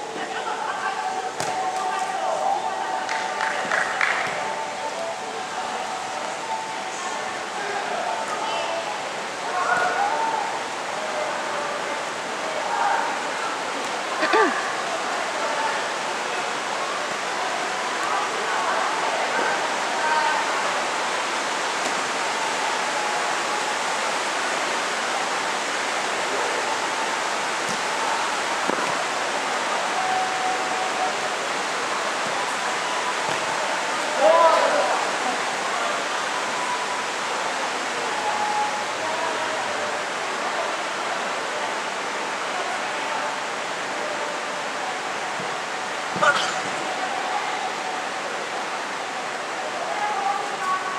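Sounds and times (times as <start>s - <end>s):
players calling: 46.0s - 47.8s.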